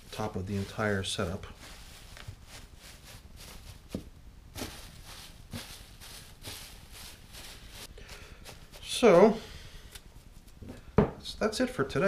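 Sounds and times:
dry leaves rustling: 0.0 - 9.3.

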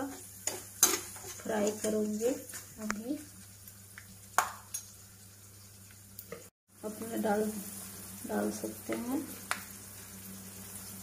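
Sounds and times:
nuts sizzling in hot oil: 0.0 - 11.0.

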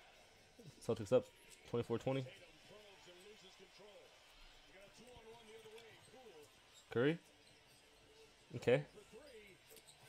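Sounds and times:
faint man's voice commentating: 0.0 - 7.2.

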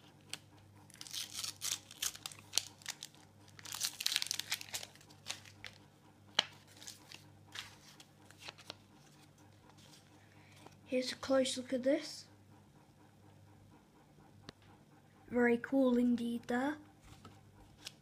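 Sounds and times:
wrapper tearing and crinkling: 0.9 - 5.8, 6.5 - 8.8.

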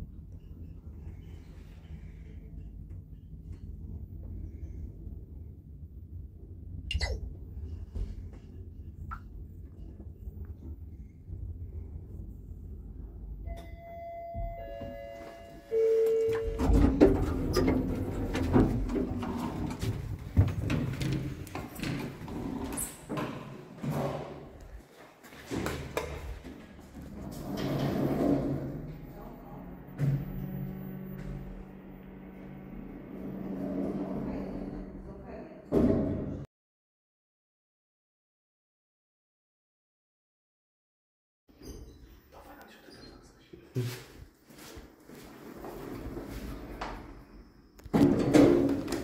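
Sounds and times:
elevator chime tones: 13.4 - 16.7
sliding doors opening: 16.1 - 24.3, 25.5 - 35.1.

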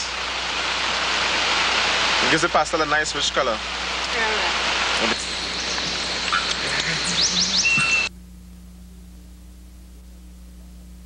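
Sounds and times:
faint tape hiss: 0.0 - 11.0
steady outdoor hiss: 0.0 - 11.0
bird chirps: 5.2 - 8.1.

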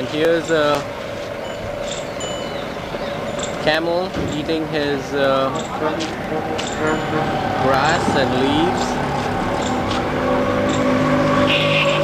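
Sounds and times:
constant hum: 0.0 - 12.0
street background noise: 0.0 - 12.0
short high-pitched tones: 5.5 - 7.7.

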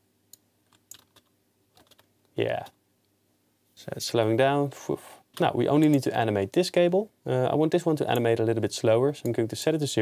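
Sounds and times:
computer keyboard keystrokes: 0.7 - 2.1.

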